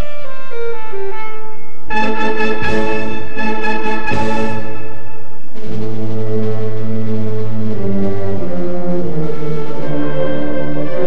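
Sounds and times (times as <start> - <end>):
slow orchestral music: 0.0 - 11.0.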